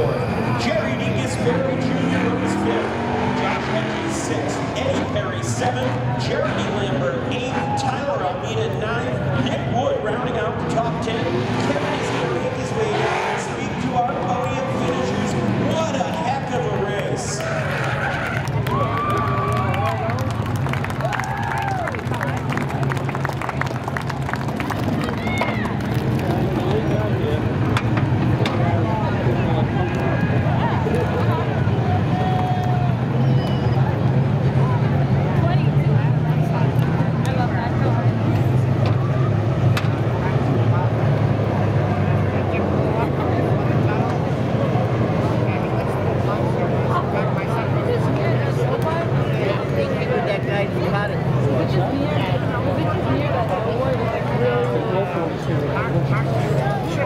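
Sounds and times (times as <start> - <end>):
car engines idling: 0.0 - 57.0
people's voices and calls: 0.0 - 57.0.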